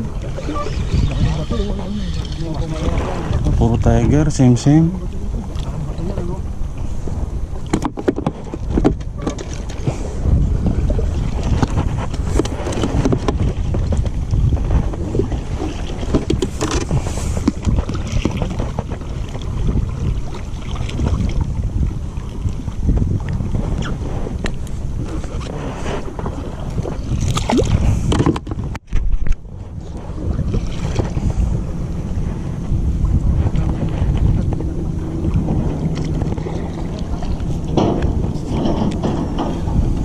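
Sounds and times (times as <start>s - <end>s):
water sloshing against boat hull: 0.0s - 40.0s
wind rumbling on microphone: 0.0s - 40.0s.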